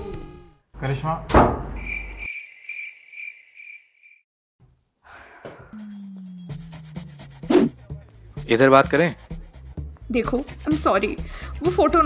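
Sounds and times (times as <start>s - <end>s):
sharp thud: 1.3s - 1.8s.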